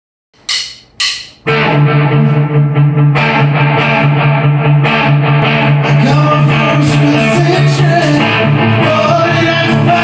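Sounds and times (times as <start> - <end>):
rock band playing: 1.4 - 10.0.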